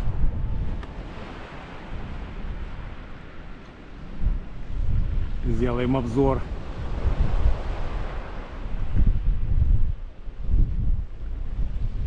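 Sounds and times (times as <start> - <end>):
strong wind buffeting microphone: 0.0 - 12.0.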